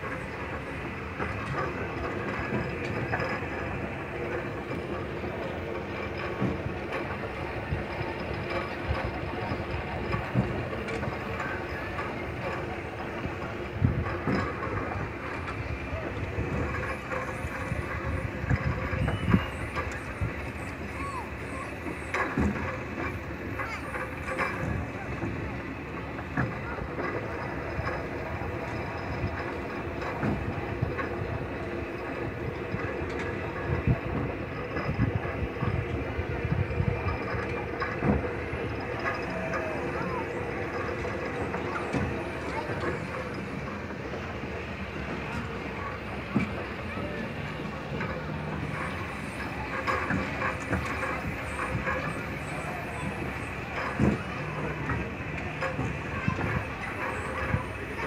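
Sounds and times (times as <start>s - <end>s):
ride car motor hum and rumble: 0.0s - 58.0s
knocks and clatter: 21.8s - 58.0s.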